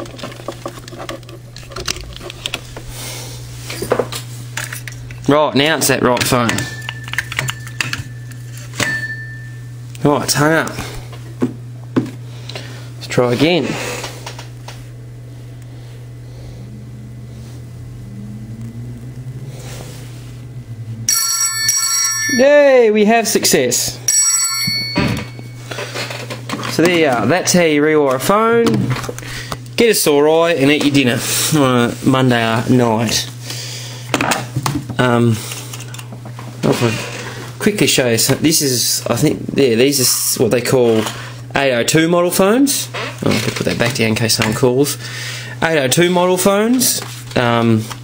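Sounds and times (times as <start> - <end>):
steady low hum: 0.0 - 48.0
hands handling a telephone: 6.2 - 9.1
telephone bell ringing: 6.5 - 9.7, 21.1 - 22.9, 24.1 - 25.7.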